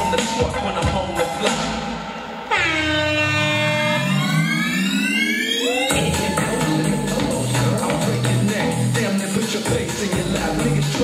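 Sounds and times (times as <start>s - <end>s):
dance music beat: 0.0s - 11.0s
horn-like sound effect: 2.3s - 8.0s.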